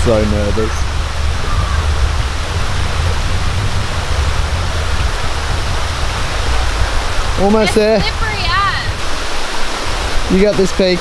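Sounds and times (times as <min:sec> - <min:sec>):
low rumble: 0:00.0 - 0:10.1
creek water flowing over stones: 0:00.0 - 0:11.0.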